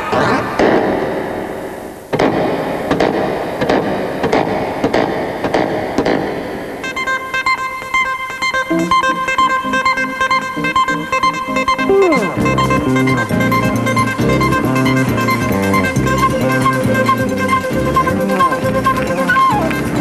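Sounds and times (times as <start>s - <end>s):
electric keyboard playing: 6.6s - 20.0s
bass line: 11.9s - 20.0s.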